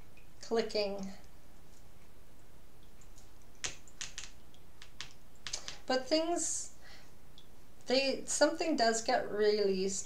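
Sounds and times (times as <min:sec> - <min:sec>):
hands handling small objects: 0:03.0 - 0:05.8.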